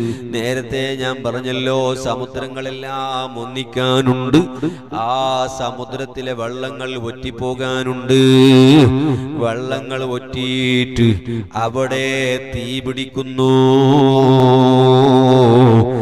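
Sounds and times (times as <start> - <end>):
man chanting melodically: 0.0 - 16.0.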